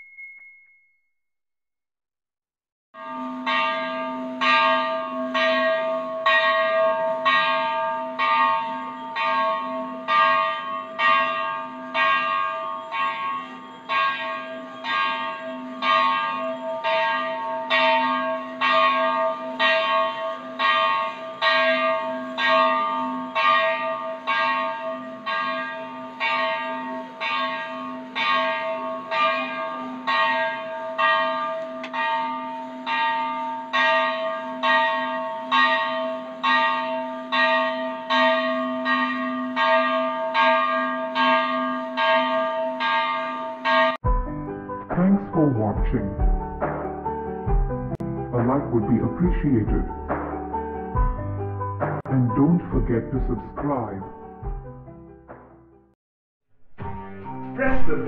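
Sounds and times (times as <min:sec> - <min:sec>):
metallic bell ringing: 0:00.0 - 0:01.0, 0:03.0 - 0:44.0.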